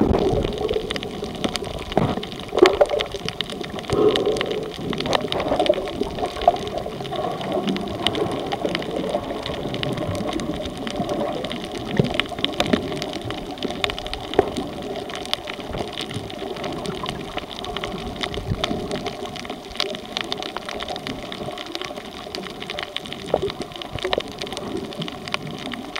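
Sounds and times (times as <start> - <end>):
sharp underwater clicks: 0.0 - 25.9
underwater rush of water: 0.0 - 25.9.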